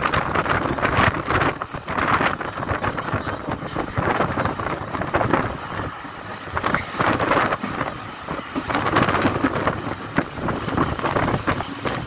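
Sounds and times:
train running on track: 0:00.0 - 0:12.0
wind rushing on microphone: 0:00.0 - 0:12.0.

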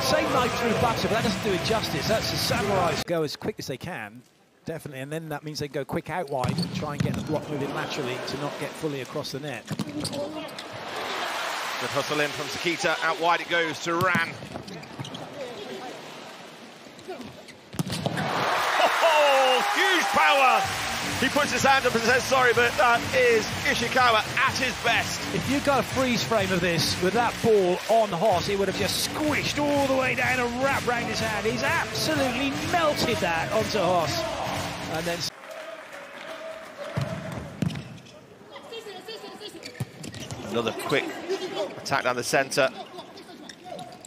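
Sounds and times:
crowd cheering: 0:00.0 - 0:03.0, 0:07.4 - 0:08.9, 0:10.4 - 0:14.0, 0:18.1 - 0:37.6
volleyball strike: 0:17.7 - 0:18.6, 0:36.8 - 0:37.9.

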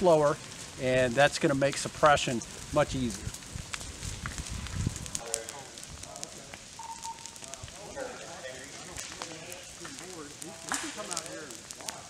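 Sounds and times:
leaves and twigs crackling in fire: 0:00.0 - 0:12.0
soft fire hiss: 0:00.0 - 0:12.0.

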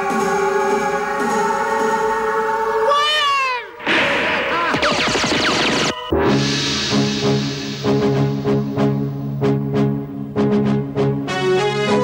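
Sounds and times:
ray gun zapping: 0:03.8 - 0:06.1.

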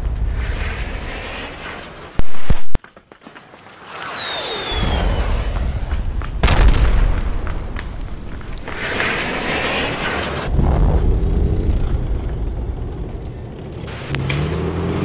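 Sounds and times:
high falling whistle tones: 0:00.3 - 0:02.7, 0:03.8 - 0:06.2, 0:08.6 - 0:10.6
deep booming rumble: 0:10.4 - 0:14.1.

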